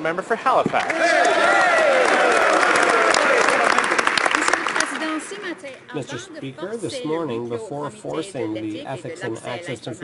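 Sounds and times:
people applauding: 0.7s - 5.8s.

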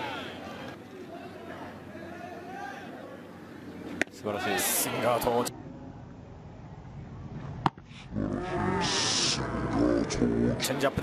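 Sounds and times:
long drawn-out shout: 0.0s - 3.2s
low stadium ambience: 0.0s - 11.0s.

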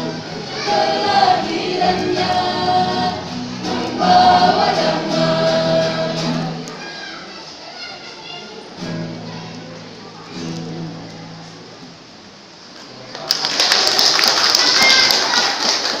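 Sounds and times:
vocal group singing held notes: 0.0s - 6.8s
audience applauding: 13.1s - 16.0s.

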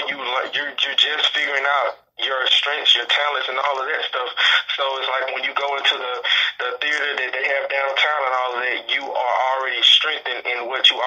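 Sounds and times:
person talking over telephone: 0.0s - 11.0s.

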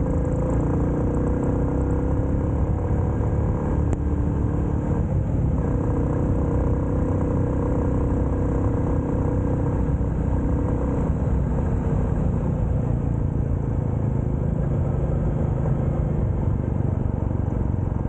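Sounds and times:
motorcycle engine running: 0.0s - 18.0s
wind and road rumble: 0.0s - 18.0s.

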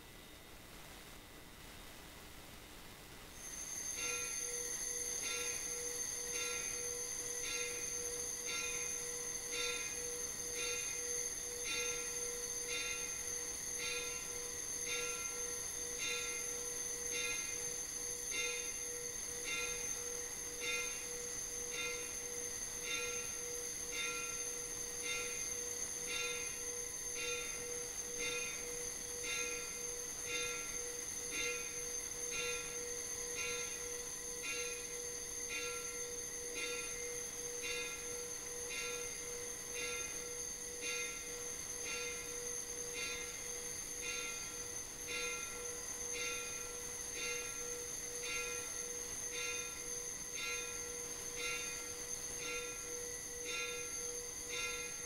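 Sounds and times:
steady high ringing tone: 0.0s - 55.0s
altar bells ringing: 3.8s - 55.0s.

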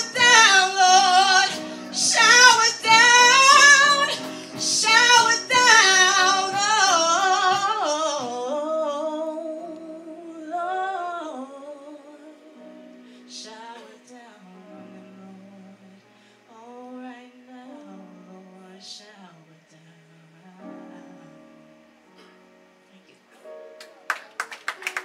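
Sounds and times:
woman singing with vibrato: 0.0s - 12.6s.

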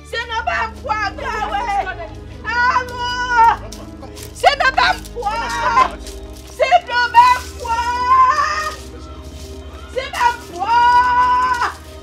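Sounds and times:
woman yelling: 0.0s - 3.7s, 4.4s - 5.9s, 6.6s - 8.9s, 9.9s - 11.9s.

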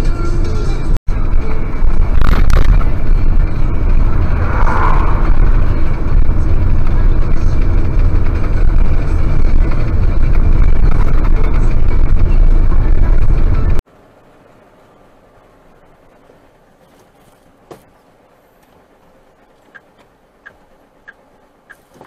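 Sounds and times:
truck engine and road noise: 0.0s - 22.0s.

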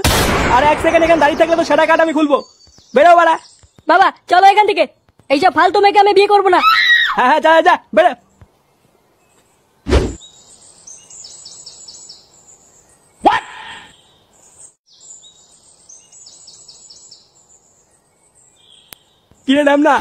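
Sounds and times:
sharp loud hit: 0.0s - 1.7s
birds chirping: 0.0s - 20.0s.

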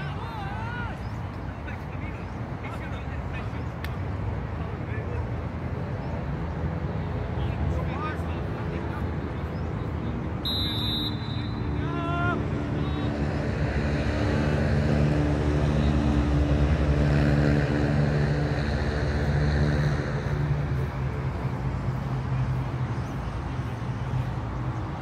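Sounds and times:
low engine drone: 12.4s - 25.0s.

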